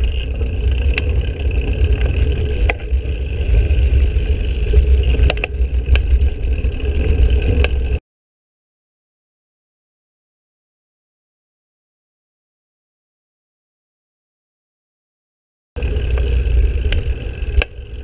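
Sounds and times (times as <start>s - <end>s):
bicycle road rumble: 0.0s - 8.0s, 15.8s - 18.0s
sharp rattling clicks: 0.0s - 8.0s, 15.8s - 18.0s.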